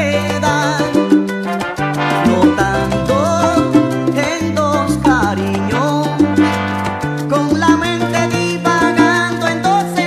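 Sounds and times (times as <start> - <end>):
salsa music: 0.0 - 10.0.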